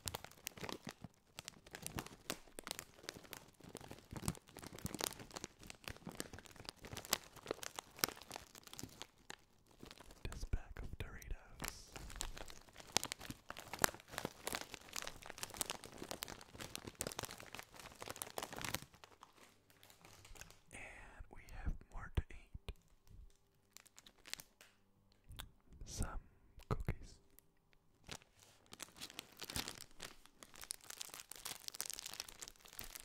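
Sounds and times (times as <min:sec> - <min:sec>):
crisp bag crinkling: 0:00.0 - 0:10.5, 0:11.2 - 0:20.7, 0:23.6 - 0:24.7, 0:28.0 - 0:33.0.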